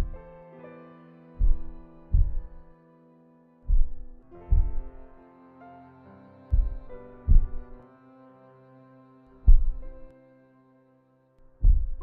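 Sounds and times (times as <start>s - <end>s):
slow heartbeat thumps: 0.0s - 0.2s, 1.4s - 2.6s, 3.7s - 5.1s, 6.5s - 7.7s, 9.5s - 9.8s, 11.6s - 12.0s
soft sustained music chords: 0.0s - 12.0s.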